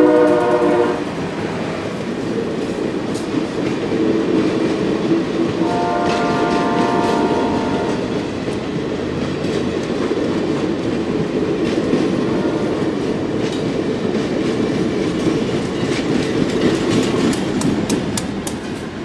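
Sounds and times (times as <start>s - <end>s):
locomotive horn: 0.0s - 1.2s, 5.6s - 8.1s, 12.2s - 12.9s
train wheels clattering on rails: 0.0s - 19.0s.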